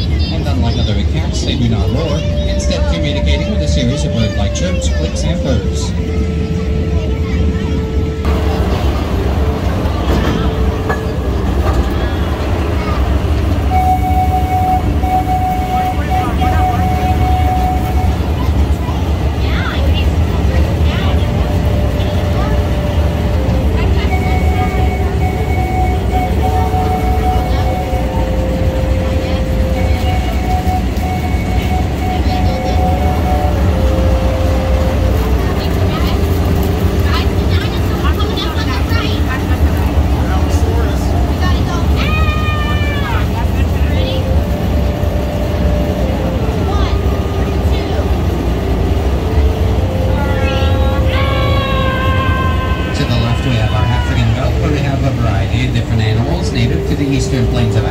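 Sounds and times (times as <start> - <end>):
indistinct voices: 0.0 - 57.9
miniature train rumbling: 0.0 - 57.9
slow melody of held notes: 22.0 - 36.8.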